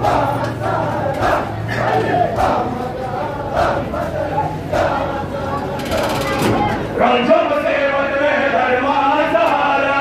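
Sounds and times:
crowd of men chanting: 0:00.0 - 0:10.0.

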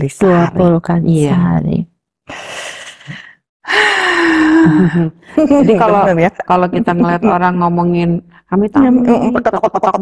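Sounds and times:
woman sighing: 0:02.9 - 0:05.1.

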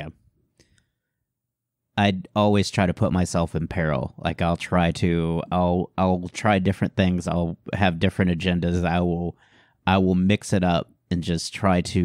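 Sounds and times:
person speaking: 0:00.0 - 0:00.3, 0:02.0 - 0:12.0.

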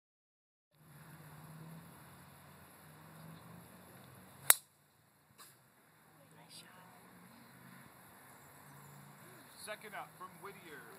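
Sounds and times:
golf club striking ball: 0:04.4 - 0:04.7.

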